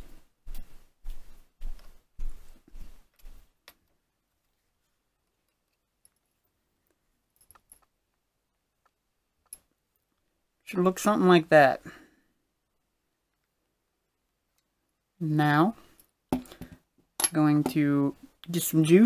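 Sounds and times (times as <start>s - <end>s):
rustling and scraping handling: 0.0s - 10.3s.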